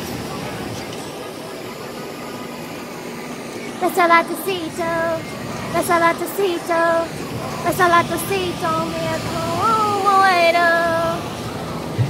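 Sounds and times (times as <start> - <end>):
indistinct indoor voices: 0.0 - 12.0.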